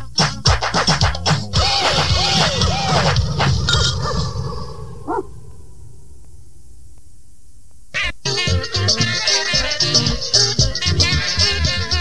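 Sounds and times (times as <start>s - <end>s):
perreo dance music: 0.0s - 3.7s, 8.0s - 12.0s
dog bark sound effect: 5.0s - 5.4s.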